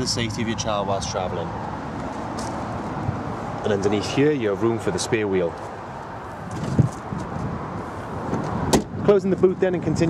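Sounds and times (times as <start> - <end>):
car tailgate shutting: 8.3 - 9.0.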